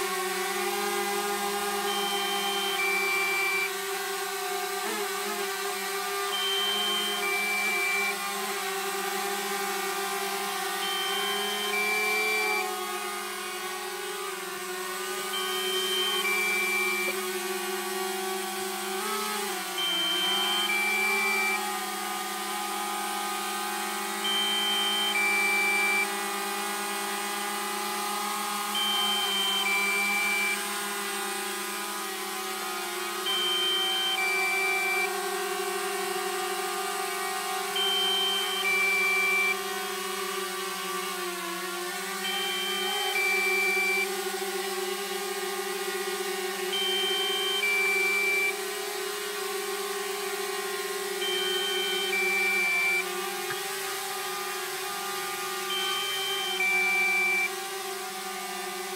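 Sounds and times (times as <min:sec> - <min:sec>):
drone propellers buzzing: 0:00.0 - 0:58.9
two-note warning beep: 0:01.9 - 0:03.7, 0:06.3 - 0:08.2, 0:10.8 - 0:12.7, 0:15.2 - 0:17.2, 0:19.8 - 0:21.6, 0:24.2 - 0:26.1, 0:28.8 - 0:30.6, 0:33.3 - 0:35.1, 0:37.8 - 0:39.6, 0:42.2 - 0:44.1, 0:46.7 - 0:48.6, 0:51.2 - 0:53.6, 0:55.7 - 0:57.5.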